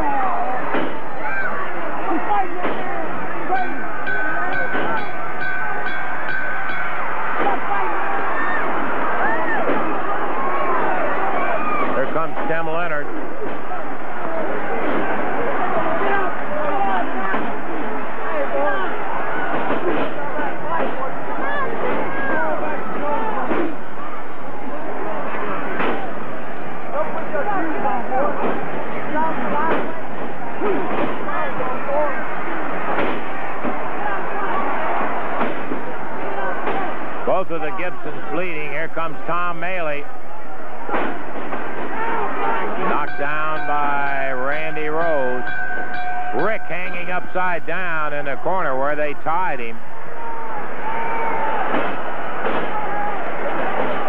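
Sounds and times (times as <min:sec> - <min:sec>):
arena crowd yelling and screaming: 0:00.0 - 0:54.0.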